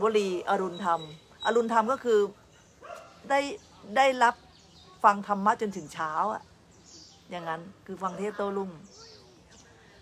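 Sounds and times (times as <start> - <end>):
woman speaking: 0.0 - 2.4, 3.2 - 4.4, 5.0 - 6.4, 7.2 - 8.9
faint dog bark: 2.3 - 3.3.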